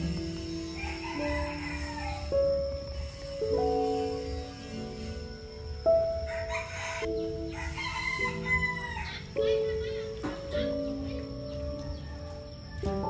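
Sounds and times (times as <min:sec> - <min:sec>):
rooster crowing: 0:00.0 - 0:03.2, 0:05.7 - 0:09.9, 0:11.2 - 0:13.0
slow background music: 0:00.0 - 0:13.0.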